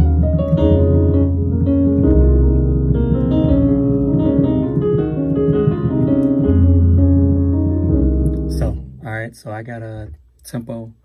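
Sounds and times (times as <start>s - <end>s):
electronic keyboard piano chords: 0.0s - 10.2s.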